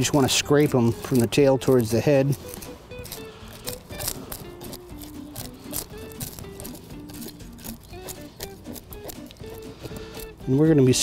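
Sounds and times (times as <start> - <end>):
knife scraping fish scales: 0.0 - 10.6
background music: 0.0 - 11.0.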